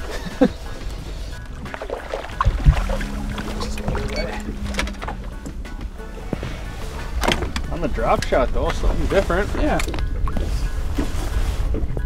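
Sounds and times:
background music: 0:00.0 - 0:12.0
small boat on water: 0:00.0 - 0:12.0
wind rumbling on microphone: 0:00.0 - 0:12.0
steady hum: 0:00.6 - 0:08.6
knock on boat: 0:02.4 - 0:06.6.

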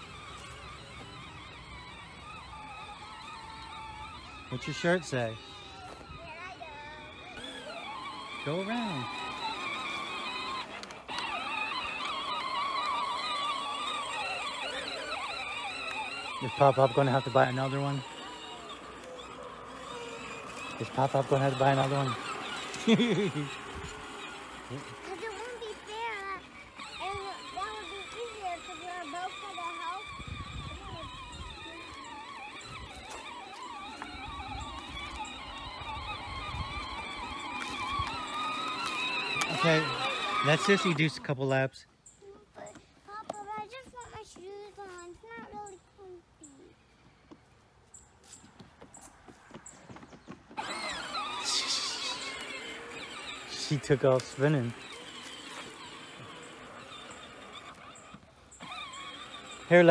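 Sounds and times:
toy tractor electric motor whining: 0:00.0 - 0:59.9.

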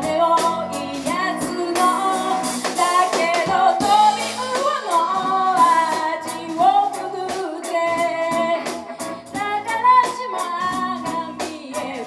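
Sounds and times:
drums with cymbals: 0:00.0 - 0:12.0
electric bass: 0:00.0 - 0:12.0
electric guitar: 0:00.0 - 0:12.0
keyboard: 0:00.0 - 0:12.0
woman singing: 0:00.0 - 0:12.0.

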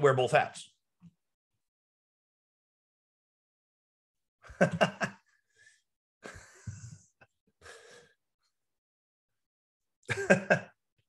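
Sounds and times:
man's soft gasp: 0:07.6 - 0:08.2.

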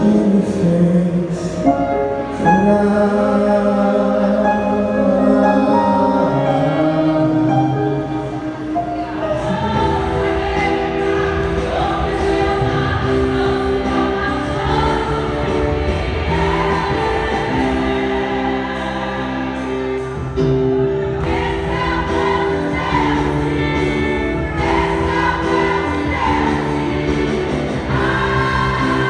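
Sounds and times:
live band playing: 0:00.0 - 0:29.0
women's choir singing gospel: 0:00.0 - 0:29.0.

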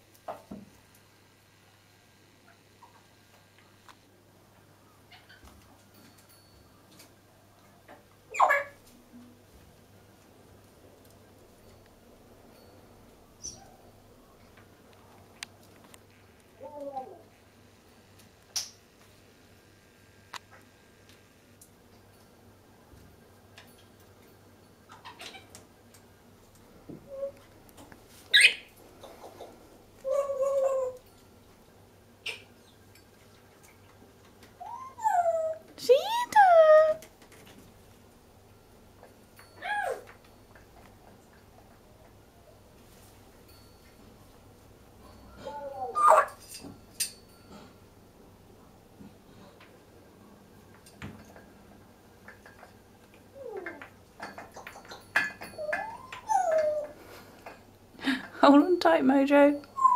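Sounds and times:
parrot squeaking and whistling: 0:08.3 - 0:08.8, 0:28.3 - 0:28.7, 0:34.6 - 0:36.8, 0:46.0 - 0:46.4, 0:55.6 - 0:56.9.

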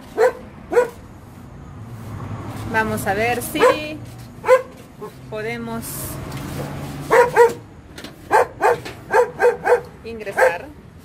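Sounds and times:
dog barking sharply: 0:00.1 - 0:01.0, 0:03.6 - 0:03.8, 0:04.4 - 0:05.1, 0:07.1 - 0:07.6, 0:08.3 - 0:10.6.

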